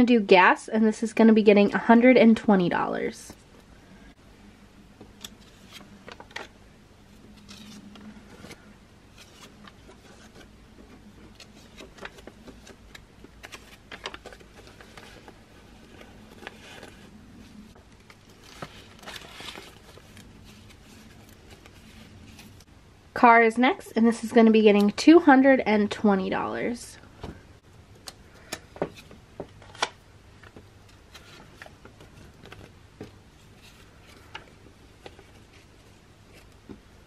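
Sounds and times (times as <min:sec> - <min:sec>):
paper banknotes rustling: 0:07.2 - 0:22.7.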